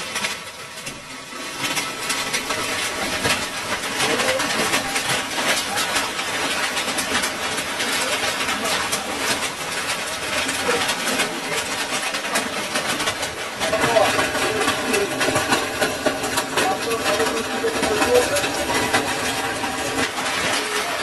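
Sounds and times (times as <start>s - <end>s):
hail clattering: 0.0s - 21.0s
faint voices: 1.6s - 21.0s.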